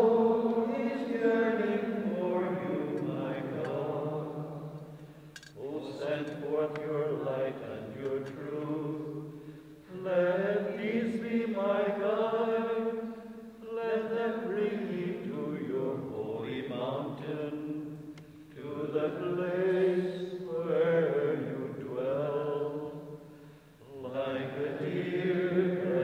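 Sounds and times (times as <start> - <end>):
slow chanted singing: 0.0 - 26.0.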